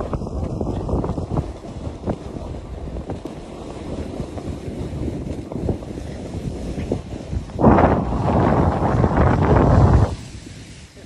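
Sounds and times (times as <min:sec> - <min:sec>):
wind rushing over microphone: 0:00.0 - 0:11.0
ski edges scraping packed snow: 0:00.4 - 0:11.0.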